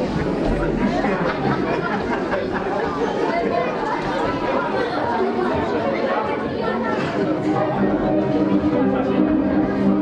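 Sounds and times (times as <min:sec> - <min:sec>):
babble of many voices: 0:00.0 - 0:10.0.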